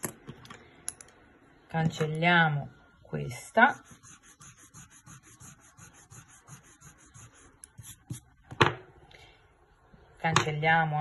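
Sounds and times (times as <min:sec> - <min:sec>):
eraser rubbing on paper: 0:03.6 - 0:08.3.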